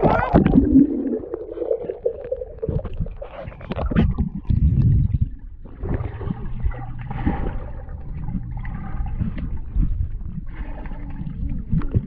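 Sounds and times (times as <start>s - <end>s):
muffled underwater water rumble: 0.0s - 12.0s.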